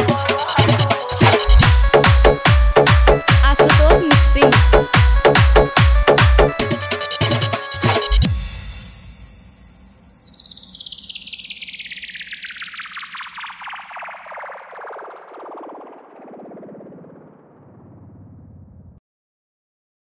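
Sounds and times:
pulsing synthesizer tone sweeping down: 8.8s - 18.8s.

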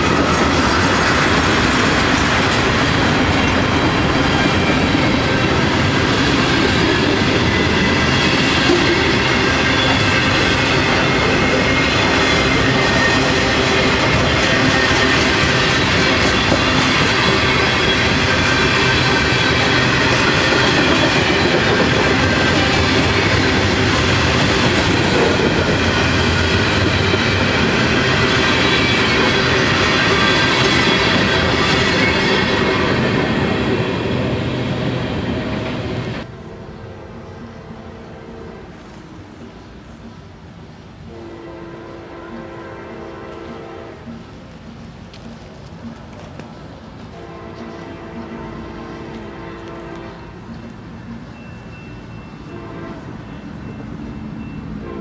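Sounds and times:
train wheels clattering over rails: 0.0s - 36.3s.

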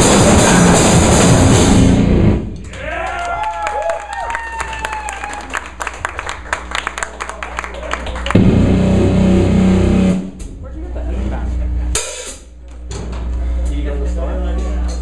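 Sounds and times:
drum and cymbal taps: 0.0s - 1.9s, 12.0s - 12.5s
cymbal crash: 0.0s - 2.5s, 8.4s - 10.6s, 12.0s - 12.5s
amplified guitar chord: 8.4s - 10.4s.

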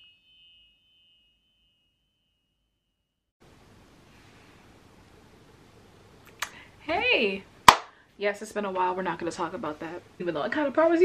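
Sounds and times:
faint room hiss: 3.4s - 11.0s.

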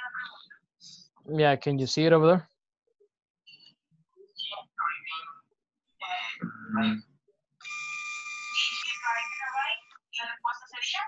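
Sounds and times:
steady electronic tone: 6.4s - 7.0s
person speaking: 6.4s - 7.1s.

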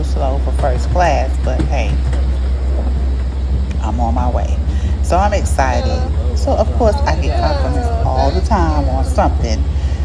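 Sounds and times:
woman speaking: 0.0s - 2.1s, 3.7s - 10.0s
deep hum: 0.0s - 10.0s.

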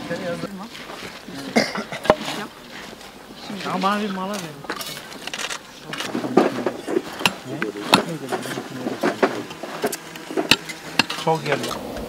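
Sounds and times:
people talking indistinctly: 0.0s - 11.8s
metal trowels scraping stone: 0.7s - 11.8s.

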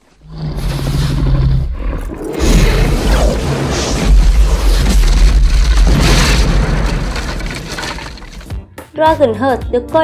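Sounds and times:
long low creature roar: 0.1s - 4.0s.

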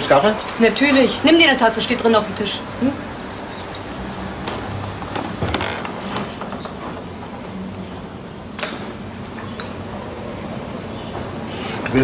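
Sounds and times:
small metal objects clinking: 3.2s - 3.9s.

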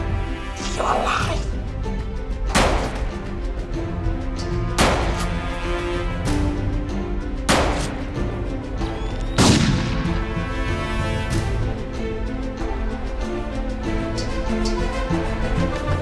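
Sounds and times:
background music: 0.0s - 16.0s
pistol shots echoing: 7.5s - 8.0s.

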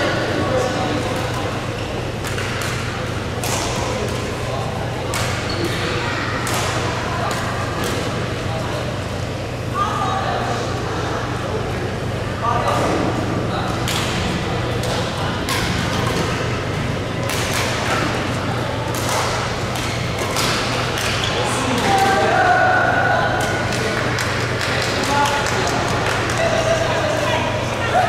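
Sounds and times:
low hall hum: 0.0s - 28.0s
people talking: 0.0s - 28.0s
rackets hitting shuttlecock: 2.2s - 4.4s, 6.4s - 8.1s, 13.8s - 16.6s, 17.2s - 22.2s.

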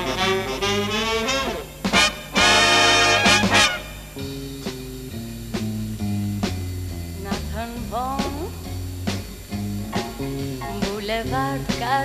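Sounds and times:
big band horn chords: 0.0s - 7.0s, 8.3s - 11.0s
sharp drum hit: 1.8s - 4.8s.

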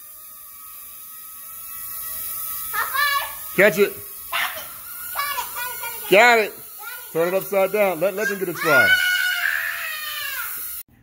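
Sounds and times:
child squealing: 8.2s - 10.6s.

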